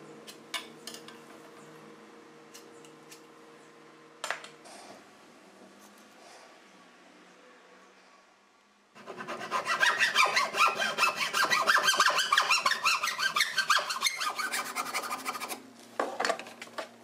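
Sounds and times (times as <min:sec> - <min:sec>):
hand saw cutting wood: 0:09.0 - 0:15.6.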